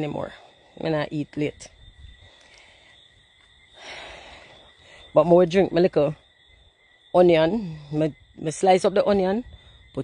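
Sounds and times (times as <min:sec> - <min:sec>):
person breathing softly: 0:02.2 - 0:05.1.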